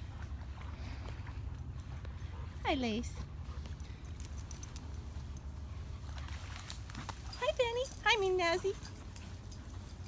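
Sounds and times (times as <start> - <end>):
faint metallic jingling: 1.8 - 10.0.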